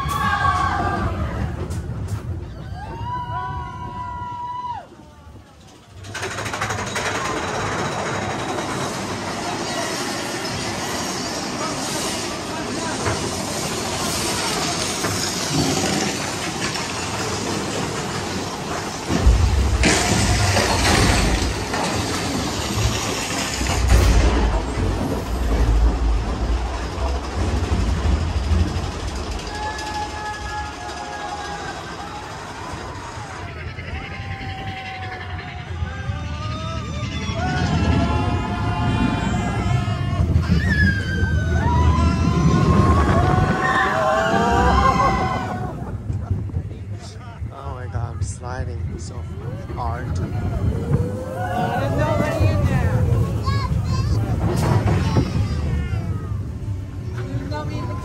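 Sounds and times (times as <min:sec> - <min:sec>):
roller coaster rattling on track: 0:00.0 - 0:58.0
wind rushing over microphone: 0:35.9 - 0:58.0.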